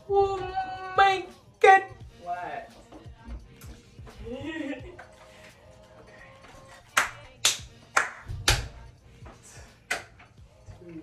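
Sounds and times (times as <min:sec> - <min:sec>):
faint background music: 0:00.0 - 0:11.0
hand claps: 0:06.8 - 0:08.9, 0:09.8 - 0:10.3.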